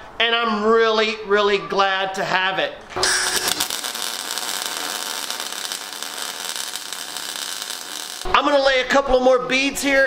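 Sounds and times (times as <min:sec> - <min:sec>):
welding arc crackling hiss: 0:03.0 - 0:08.4.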